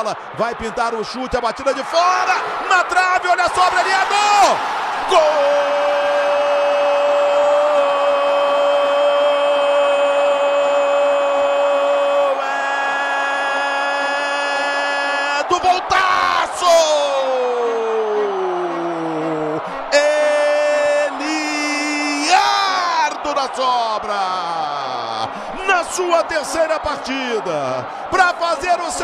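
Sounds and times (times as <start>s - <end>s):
commentator's drawn-out goal cry: 0.0s - 29.0s
stadium crowd cheering: 0.0s - 29.0s.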